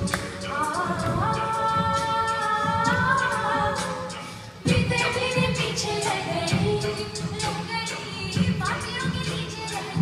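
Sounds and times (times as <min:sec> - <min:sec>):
a cappella group singing: 0:00.0 - 0:10.0.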